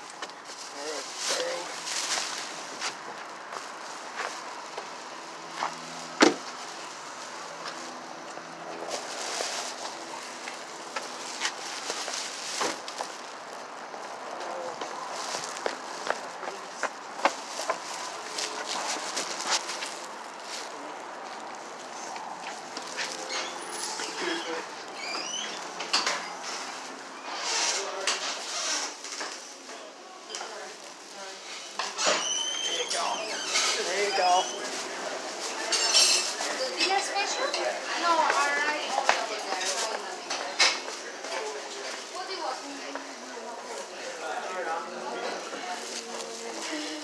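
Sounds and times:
indistinct background voices: 0:00.0 - 0:47.0.

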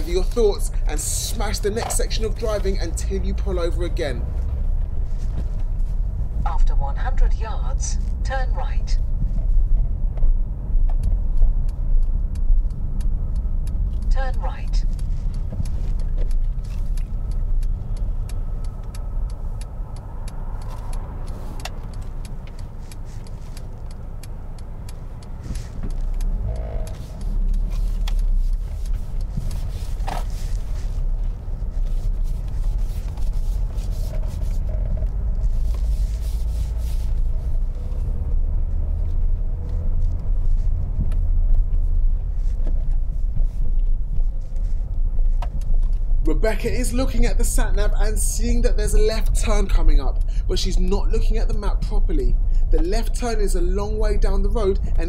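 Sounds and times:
car engine from inside cabin: 0:00.0 - 0:55.0
road rumble: 0:00.0 - 0:55.0.

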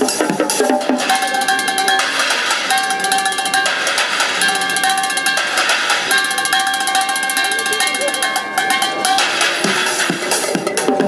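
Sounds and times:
drumming on pans and bucket: 0:00.0 - 0:11.0
steady ringing metal tones: 0:00.0 - 0:11.0.

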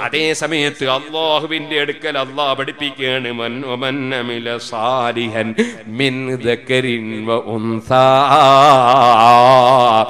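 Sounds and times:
man speaking: 0:00.0 - 0:06.9
man chanting melodically: 0:00.0 - 0:10.0.

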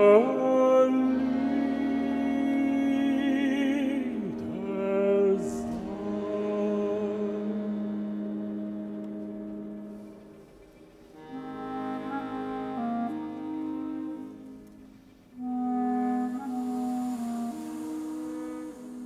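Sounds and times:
chamber ensemble with french horn: 0:00.0 - 0:19.0.

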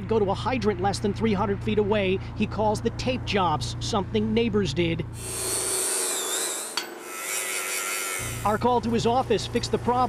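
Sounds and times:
angle grinder whining: 0:05.2 - 0:08.8.

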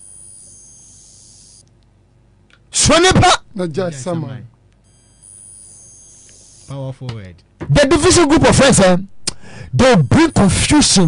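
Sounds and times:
high-pitched multi-tone whine: 0:00.0 - 0:01.7, 0:04.8 - 0:06.8, 0:09.8 - 0:11.0.

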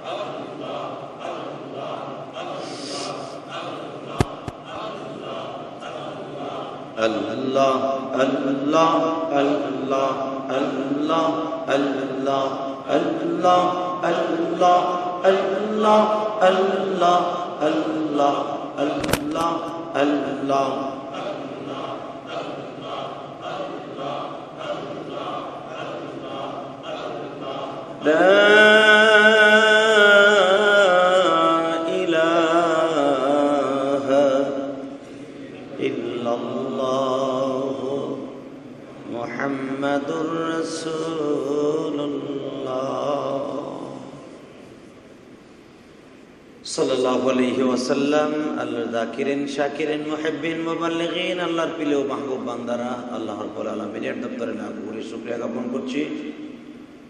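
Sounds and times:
man chanting into a microphone: 0:00.0 - 0:44.4, 0:46.6 - 0:56.8.

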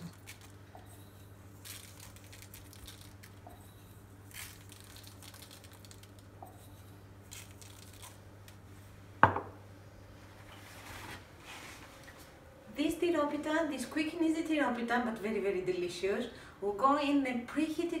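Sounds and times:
seeds sprinkled ticks and rustles: 0:01.6 - 0:06.7
glass jar knocked on countertop: 0:09.2 - 0:09.6.

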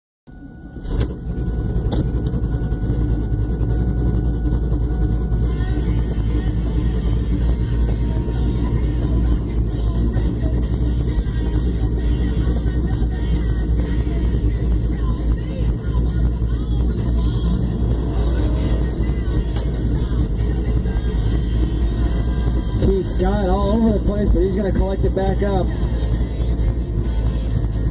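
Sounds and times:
car engine low rumble: 0:00.3 - 0:27.9.

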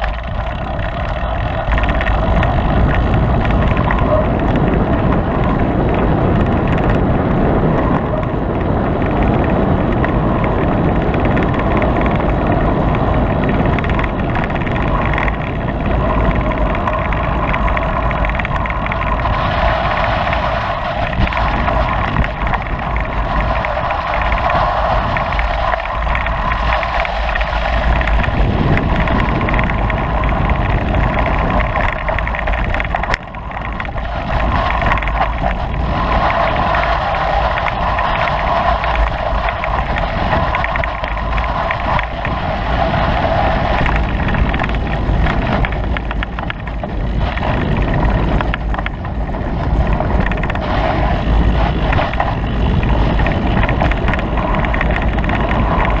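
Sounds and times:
low rumble: 0:00.0 - 0:56.0
vehicle engine running: 0:00.0 - 0:56.0.

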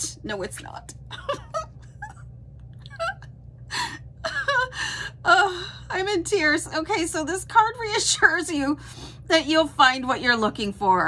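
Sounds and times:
woman laughing hard: 0:01.1 - 0:02.3, 0:02.9 - 0:05.1.

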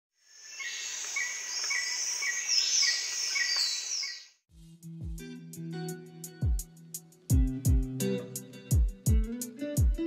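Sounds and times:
insects chorus: 0:00.2 - 0:04.3
short bird chirps: 0:00.4 - 0:04.4.

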